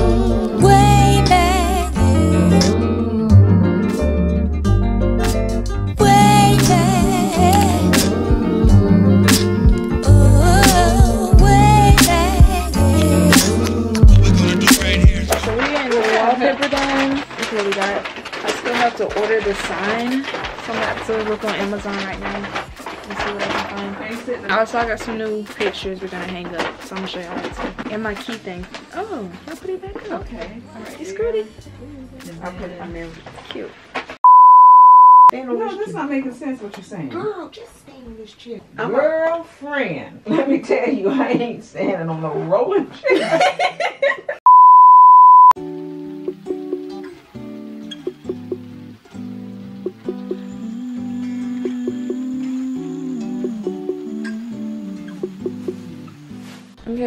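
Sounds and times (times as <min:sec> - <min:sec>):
acoustic guitar music: 0:00.0 - 0:33.3, 0:45.6 - 0:57.0
woman talking: 0:15.6 - 0:33.7
high-pitched censor bleep: 0:34.2 - 0:35.3, 0:44.5 - 0:45.6.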